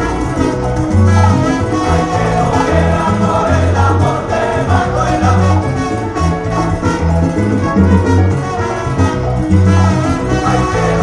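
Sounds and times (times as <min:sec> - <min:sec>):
people singing: 0:00.0 - 0:06.0, 0:09.6 - 0:11.0
pulsing bass line: 0:00.0 - 0:11.0
salsa band with orchestra: 0:00.0 - 0:11.0.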